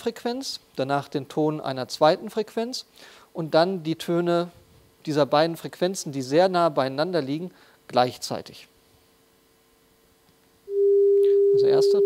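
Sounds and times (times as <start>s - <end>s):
steady sine test tone: 10.6s - 12.0s.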